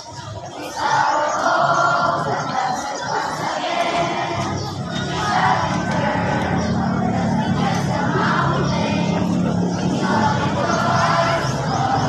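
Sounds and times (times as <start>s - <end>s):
group singing in unison: 0.0s - 12.0s
music: 0.0s - 12.0s.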